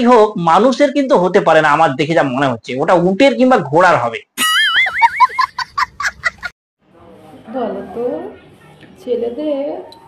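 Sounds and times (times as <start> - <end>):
child laughing: 4.4 - 6.5.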